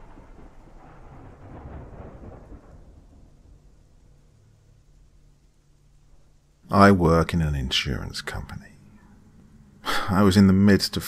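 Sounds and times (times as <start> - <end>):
rolling thunder: 0.0 - 4.6.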